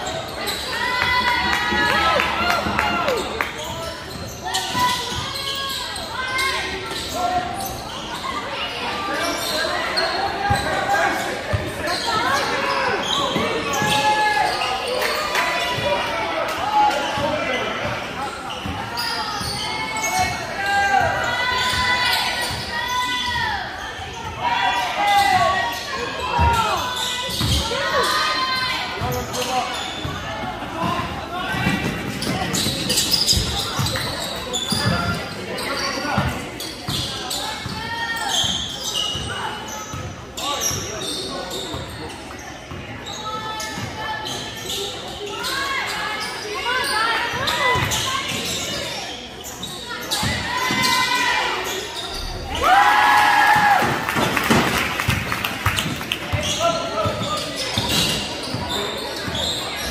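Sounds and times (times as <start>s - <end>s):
sneakers squeaking: 0.0s - 52.7s, 53.5s - 59.9s.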